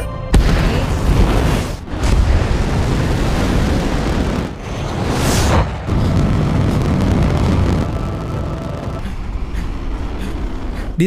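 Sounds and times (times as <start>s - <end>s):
rocket engines rumbling: 0.4s - 11.0s.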